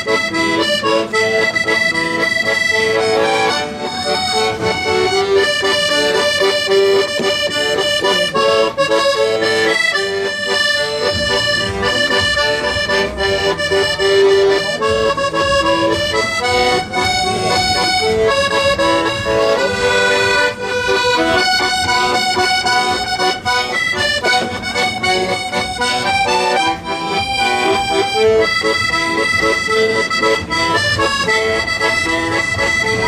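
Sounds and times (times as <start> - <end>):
accordion melody: 0.0 - 33.0.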